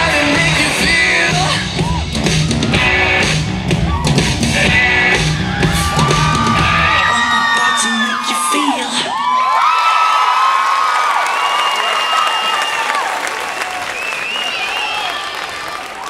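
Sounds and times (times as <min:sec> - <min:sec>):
dance music: 0:00.0 - 0:09.2
audience cheering and whooping: 0:00.1 - 0:16.0
applause: 0:09.3 - 0:16.0.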